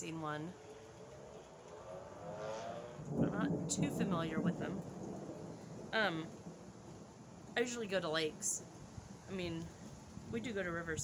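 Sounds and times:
faint passing vehicle hum: 0:00.3 - 0:05.4.

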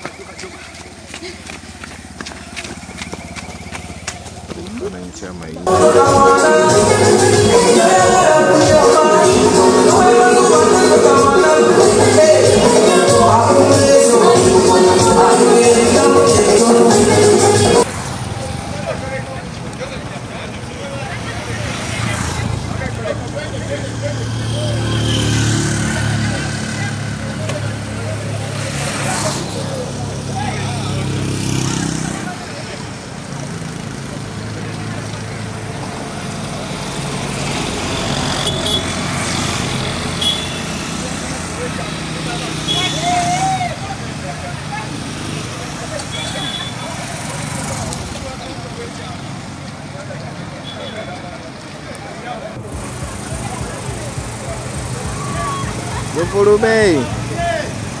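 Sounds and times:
vehicle engine running: 0:00.0 - 0:17.8, 0:52.6 - 0:58.0
street traffic: 0:00.0 - 0:58.0
people talking indistinctly: 0:04.5 - 0:17.9.

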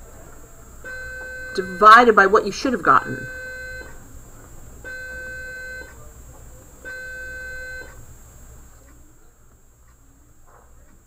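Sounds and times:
electronic beeps: 0:00.9 - 0:04.0.

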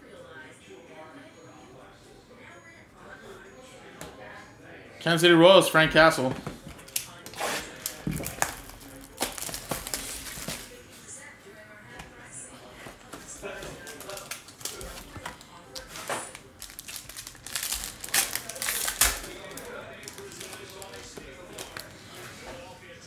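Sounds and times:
foil wrapper crinkling: 0:06.8 - 0:10.8, 0:13.6 - 0:22.1
sharp crackles: 0:16.6 - 0:20.8.

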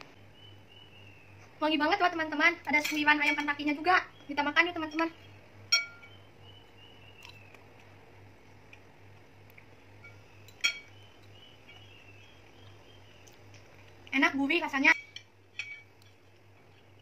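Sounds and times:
cutlery clinking on ceramic plate: 0:10.0 - 0:11.0, 0:15.0 - 0:16.2
cutlery scraping a plate: 0:15.0 - 0:16.3.

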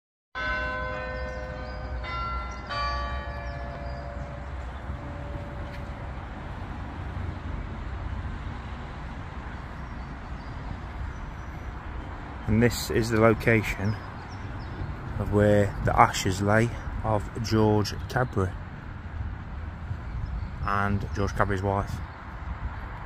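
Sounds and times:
bells ringing: 0:00.4 - 0:06.4.

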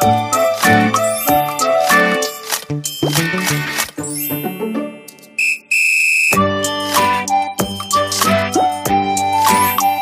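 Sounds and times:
children's music: 0:00.0 - 0:05.4, 0:06.4 - 0:10.0.

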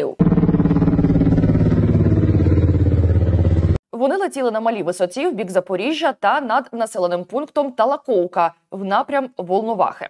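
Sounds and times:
helicopter rotor throb: 0:00.1 - 0:03.8
low engine drone: 0:00.2 - 0:03.8.

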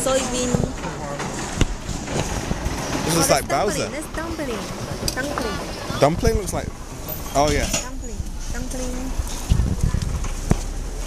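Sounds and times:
faint voices: 0:00.0 - 0:10.2
traffic hum: 0:00.0 - 0:11.0.

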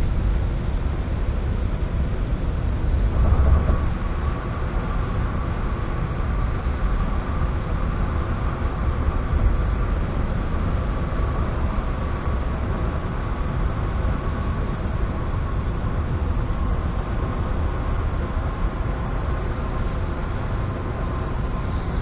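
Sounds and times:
car cabin road and engine rumble: 0:00.0 - 0:22.0.

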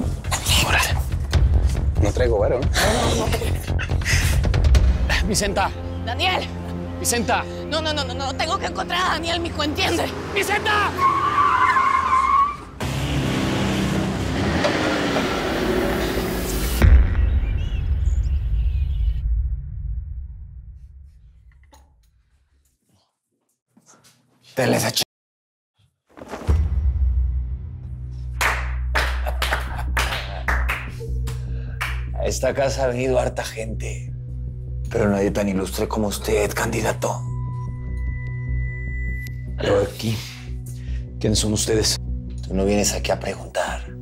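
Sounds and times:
background music with low bass: 0:00.0 - 0:10.2, 0:26.6 - 0:44.0
car tires screeching: 0:09.8 - 0:16.7
slow handclaps: 0:28.4 - 0:32.1.

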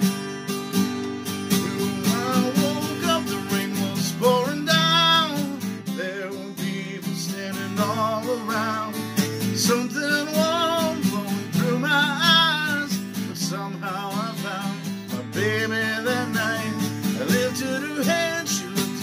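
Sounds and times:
acoustic guitar strumming: 0:00.0 - 0:19.0
man singing ballad: 0:01.6 - 0:19.0.

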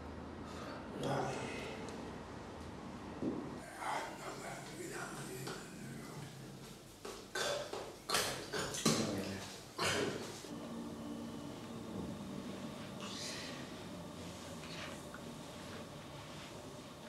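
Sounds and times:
man humming low: 0:10.5 - 0:15.3.

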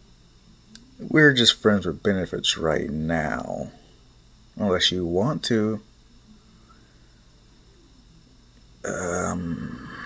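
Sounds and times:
faint room hiss: 0:00.0 - 0:10.0
man's low held vocal sound: 0:08.8 - 0:10.0.

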